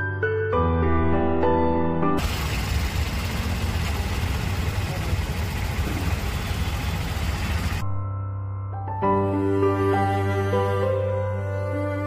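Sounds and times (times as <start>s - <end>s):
road and wind noise: 2.2s - 7.8s
small engine throbbing: 2.2s - 7.8s.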